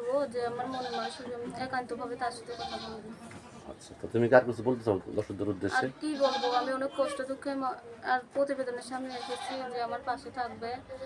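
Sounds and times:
woman talking: 0.0s - 3.2s, 6.0s - 11.0s.

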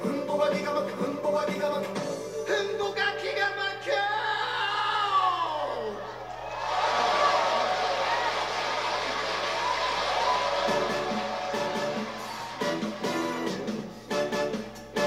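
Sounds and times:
pop song with pitch slide: 0.0s - 6.2s, 10.2s - 15.0s
audience applauding and cheering: 6.2s - 14.2s
band playing: 10.2s - 15.0s.

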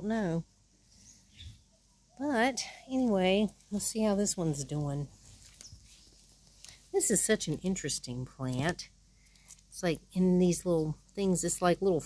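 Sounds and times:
woman speaking: 0.0s - 0.5s, 2.2s - 5.1s, 6.9s - 8.9s, 9.7s - 12.0s.

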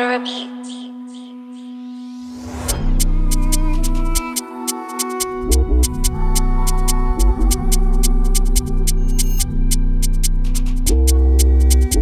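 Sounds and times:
hi-hats: 2.6s - 12.0s
deep bass: 2.7s - 4.2s, 5.4s - 12.0s.

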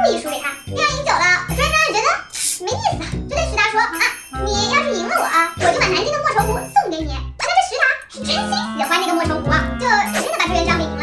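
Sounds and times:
woman talking: 0.0s - 11.0s
background music with bass notes: 8.2s - 11.0s.

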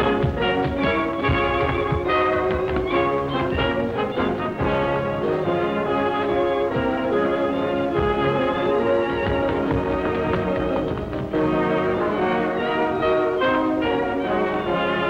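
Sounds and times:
dance orchestra with brass and fiddles: 0.0s - 15.0s
tap shoes on floor: 0.0s - 15.0s.

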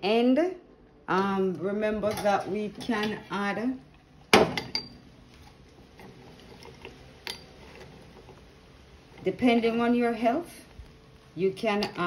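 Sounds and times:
metal spoon clanking on pot: 2.0s - 3.2s, 4.4s - 5.0s.

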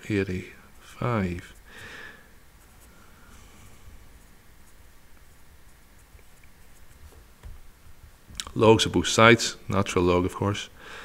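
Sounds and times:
pencil scratching on paper: 0.5s - 1.9s, 4.1s - 7.3s.

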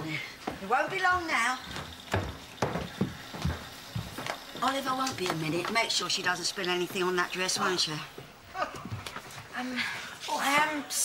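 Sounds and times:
thudding footsteps: 0.4s - 5.9s.

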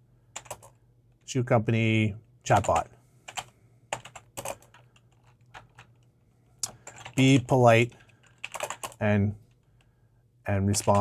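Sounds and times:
computer keyboard typing: 0.4s - 0.8s, 2.5s - 9.6s, 10.7s - 11.0s.

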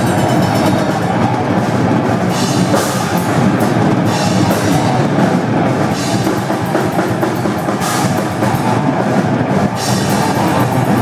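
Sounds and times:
metal band playing: 0.0s - 11.0s.

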